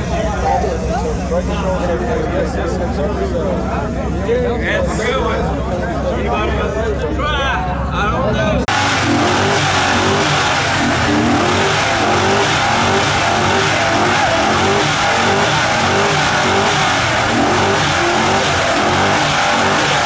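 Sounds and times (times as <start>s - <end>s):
truck engine revving hard: 8.6s - 20.0s.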